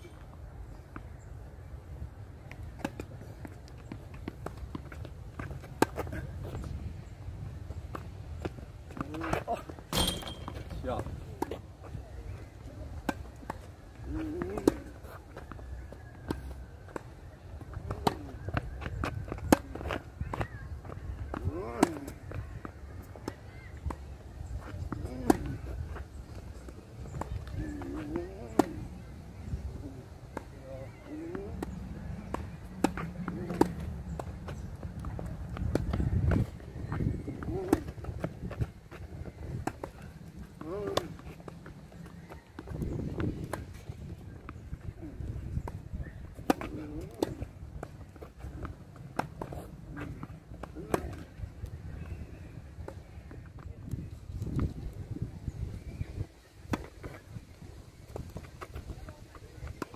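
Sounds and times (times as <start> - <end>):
wind rumble on microphone: 5.0 - 9.2, 23.5 - 59.9
ball bouncing on hard court: 8.4 - 10.7, 31.3 - 38.6.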